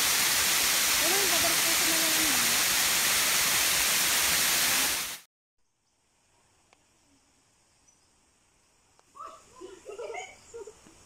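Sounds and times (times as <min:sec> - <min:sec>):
waterfall rushing over rock: 0:00.0 - 0:05.2.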